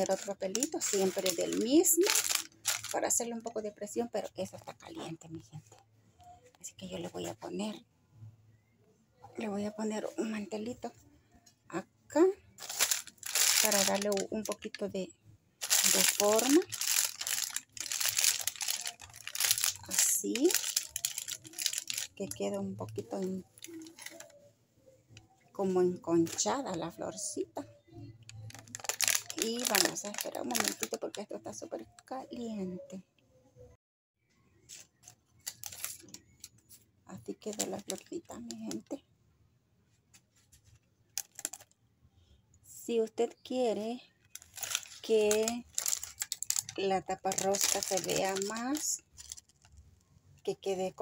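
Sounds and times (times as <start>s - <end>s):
wax paper and plastic crinkling: 0.0s - 3.5s, 12.5s - 15.0s, 15.6s - 24.4s, 28.3s - 31.8s, 34.6s - 39.0s, 40.1s - 41.8s, 44.2s - 49.9s.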